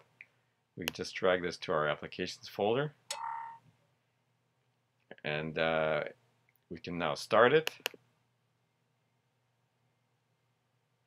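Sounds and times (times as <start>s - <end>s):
brief electronic tone: 3.1s - 3.6s.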